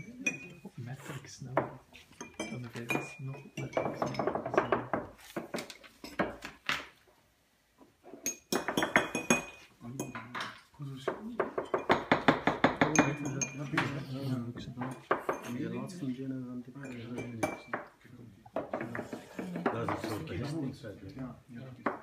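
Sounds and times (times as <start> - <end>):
spoons clinking against cups: 0.0 - 0.7, 2.0 - 4.9, 8.2 - 10.7, 11.6 - 14.0, 16.8 - 17.9.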